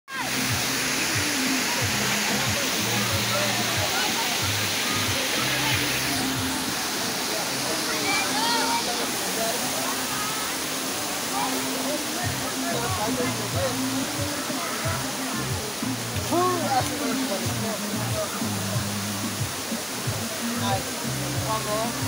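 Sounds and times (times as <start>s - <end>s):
waterfall pouring into pool: 0.1s - 22.0s.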